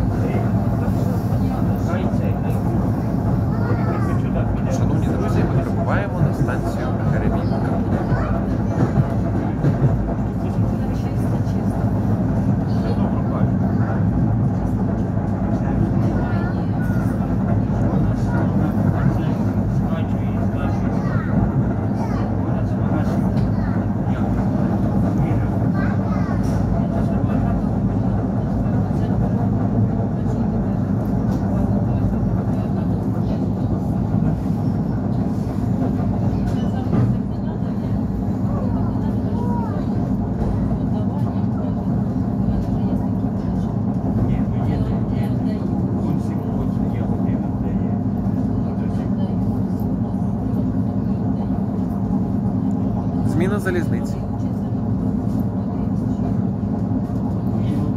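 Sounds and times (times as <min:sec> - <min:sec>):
train wheels rumbling on rails: 0:00.0 - 0:57.9.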